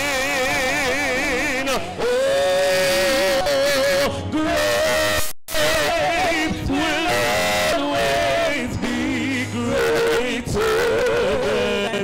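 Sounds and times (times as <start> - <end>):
lower voice singing: 0.0 - 12.0
person singing long high note: 9.1 - 12.0.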